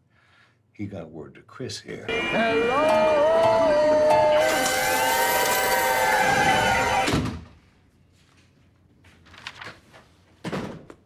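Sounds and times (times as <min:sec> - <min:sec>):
slot machines ringing: 0:02.1 - 0:06.2.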